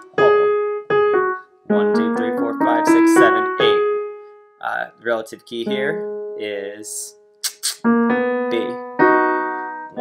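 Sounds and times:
piano playing minor scale: 0:00.0 - 0:10.0.

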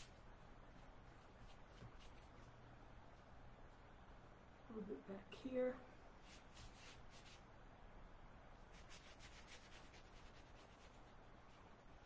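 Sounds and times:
paintbrush swishing on paper: 0:00.0 - 0:03.2, 0:06.2 - 0:07.5, 0:08.6 - 0:12.0.

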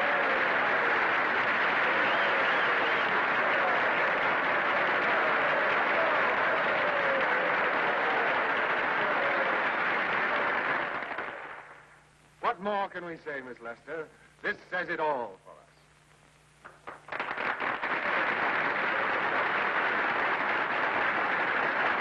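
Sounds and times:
audience applauding: 0:00.0 - 0:11.8, 0:16.6 - 0:22.0.

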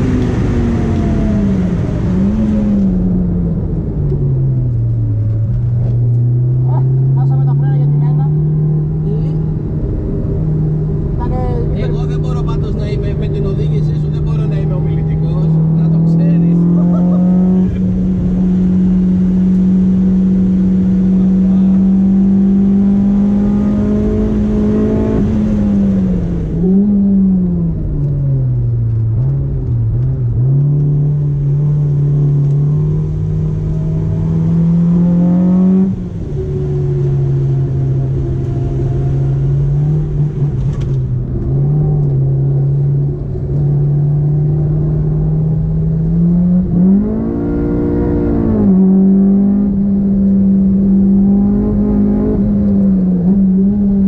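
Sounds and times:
car engine heard from cabin: 0:00.0 - 0:54.0.

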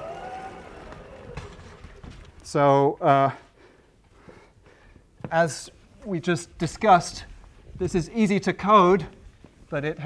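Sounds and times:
sliding panels rumbling in tracks: 0:00.0 - 0:02.8.

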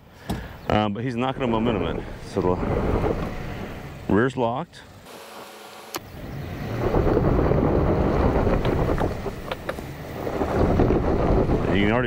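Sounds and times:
tires spinning in gravel: 0:01.2 - 0:04.2, 0:05.2 - 0:12.0
truck engine pulling: 0:06.1 - 0:12.0.

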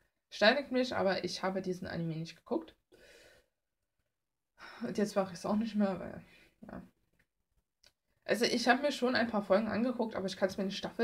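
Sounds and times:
woman speaking: 0:00.3 - 0:02.8, 0:04.6 - 0:06.9, 0:08.3 - 0:11.0.

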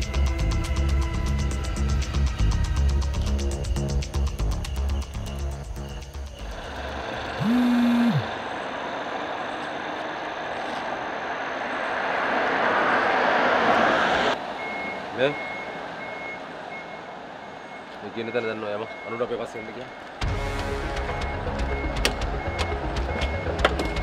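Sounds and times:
background music: 0:00.0 - 0:06.8, 0:20.2 - 0:24.0
high-pitched beeping: 0:07.4 - 0:08.3
passing vehicles rushing: 0:08.2 - 0:20.4.

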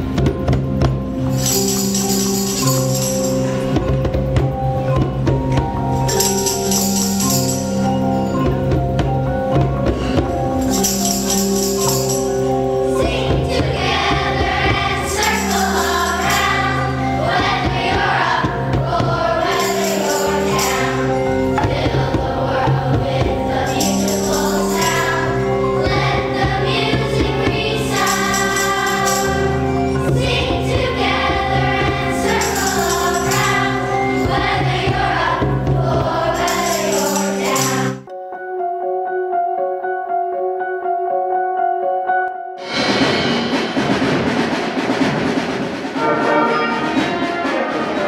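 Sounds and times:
xylophones played with mallets: 0:00.1 - 0:38.0
children's choir singing: 0:12.8 - 0:38.1, 0:42.6 - 0:48.0.

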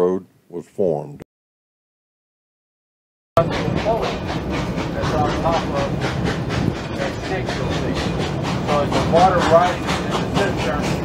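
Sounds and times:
passengers talking: 0:03.4 - 0:11.0
steam train wheels clattering: 0:03.4 - 0:11.0.

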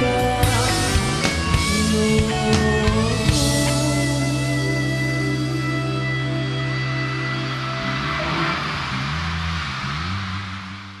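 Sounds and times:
live rock band chord: 0:00.0 - 0:09.7
wash of noise with sliding low notes: 0:03.2 - 0:11.0.

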